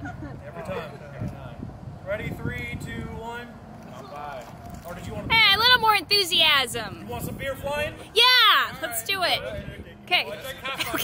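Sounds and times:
men talking and laughing: 0:00.0 - 0:01.9, 0:06.8 - 0:11.0.

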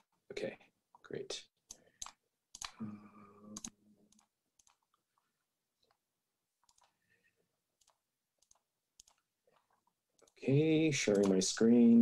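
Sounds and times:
computer mouse clicks: 0:01.6 - 0:02.8, 0:03.5 - 0:05.0, 0:06.6 - 0:07.0, 0:07.8 - 0:10.4, 0:11.0 - 0:11.4.

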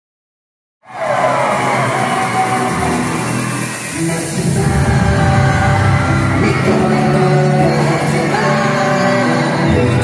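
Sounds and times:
fans screaming: 0:00.8 - 0:08.3
loud live pop music: 0:00.9 - 0:10.0.

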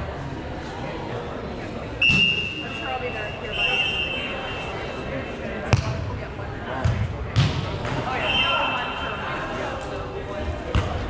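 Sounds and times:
volleyball hit by hand: 0:05.7 - 0:06.0, 0:06.8 - 0:08.0.

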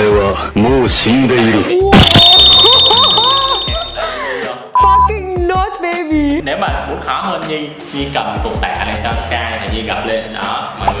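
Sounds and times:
shrill high-pitched tone: 0:02.0 - 0:04.2.

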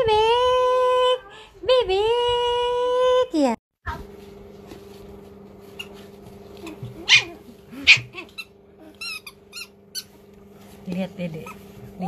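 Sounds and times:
squeaky toy squeaking: 0:08.3 - 0:10.1.

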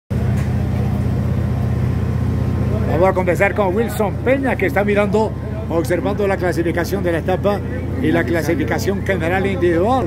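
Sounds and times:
engine idling: 0:00.1 - 0:10.0.

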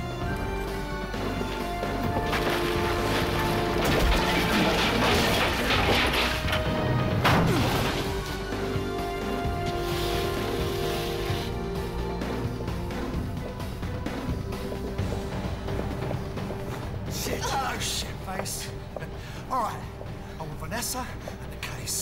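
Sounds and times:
film score music: 0:00.0 - 0:22.0
crashing clattering fight noise: 0:02.2 - 0:08.4.

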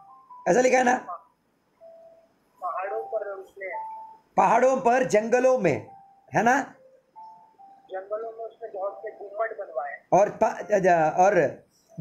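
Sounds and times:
faint steady tone: 0:00.0 - 0:12.0
man speaking: 0:00.5 - 0:01.2, 0:02.6 - 0:03.8, 0:04.4 - 0:06.8, 0:07.9 - 0:11.6.

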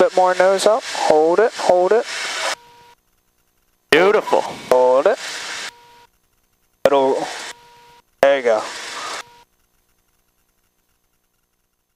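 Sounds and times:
voice over headset intercom: 0:06.9 - 0:07.4, 0:08.2 - 0:08.7.

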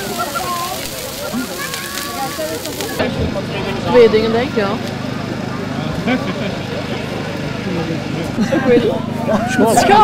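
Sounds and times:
bonfire crackling and popping: 0:00.0 - 0:05.1
crowd talking: 0:00.0 - 0:10.0.

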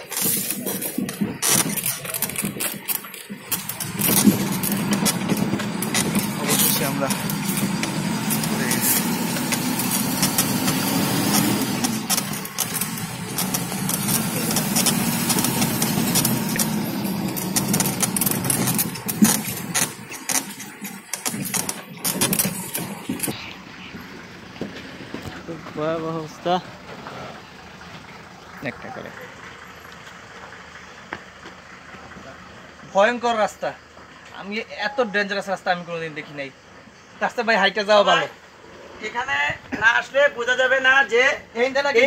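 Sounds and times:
vehicle body rattling: 0:00.0 - 0:34.6
vehicle engine under load: 0:00.0 - 0:42.0.

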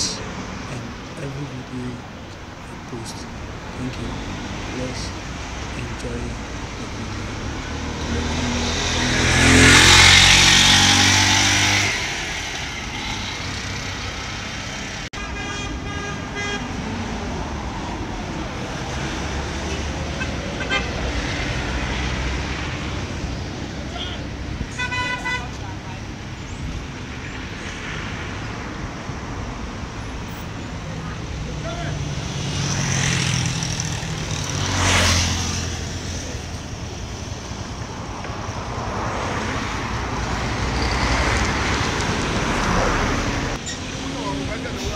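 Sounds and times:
steady traffic hum: 0:00.0 - 0:44.9
vehicle passing close by: 0:03.9 - 0:15.1, 0:31.2 - 0:44.9
car horns tooting: 0:15.2 - 0:16.8, 0:19.6 - 0:21.2, 0:23.8 - 0:25.6.

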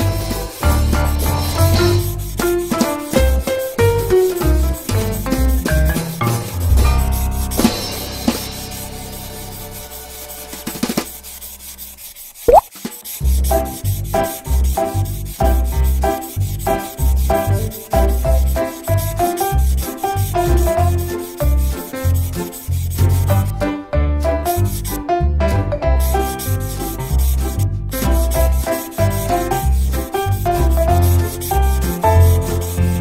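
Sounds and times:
marker rubbing on paper: 0:00.0 - 0:07.7, 0:10.0 - 0:23.6, 0:24.5 - 0:25.0, 0:26.0 - 0:33.0.

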